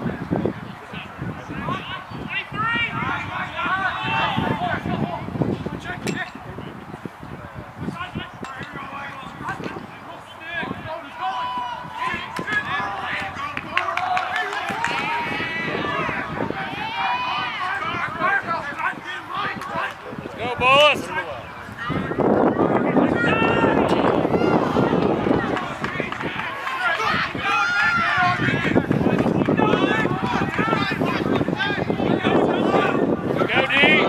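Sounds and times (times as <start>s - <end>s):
people shouting: 1.7s - 5.2s, 11.0s - 19.9s, 21.8s - 34.0s.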